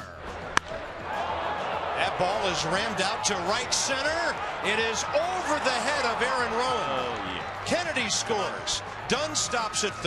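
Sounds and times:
crowd noise: 0:00.2 - 0:10.0
wooden bat cracking ball: 0:00.5 - 0:00.8.

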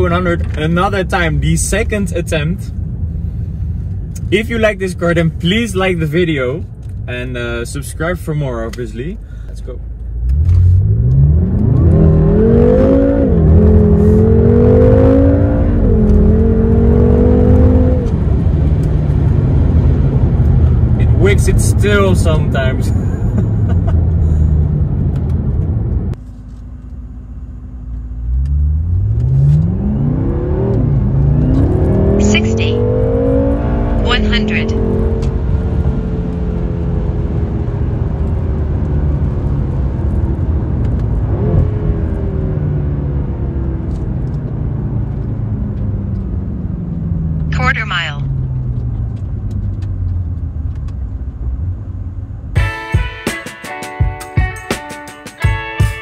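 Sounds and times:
car engine accelerating: 0:09.6 - 0:52.6
loud low engine drone: 0:27.2 - 0:35.3.

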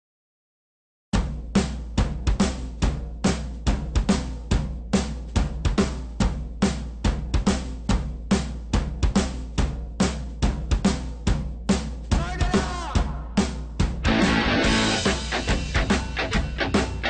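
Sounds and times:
drum kit driving beat: 0:01.2 - 0:17.0
steady low bass: 0:14.0 - 0:17.0.

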